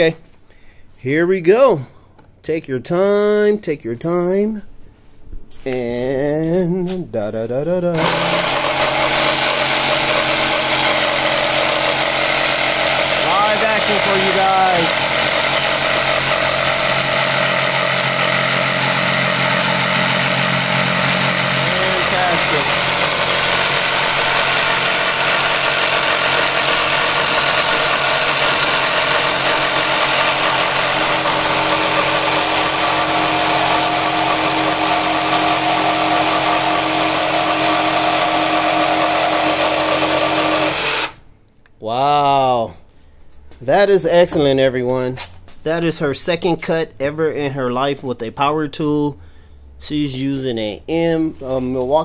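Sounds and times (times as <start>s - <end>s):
jigsaw cutting wood: 8.0s - 41.2s.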